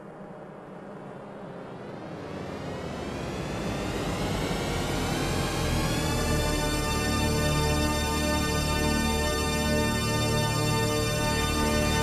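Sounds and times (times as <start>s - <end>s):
synthesized drone rising in pitch: 0.5s - 8.9s.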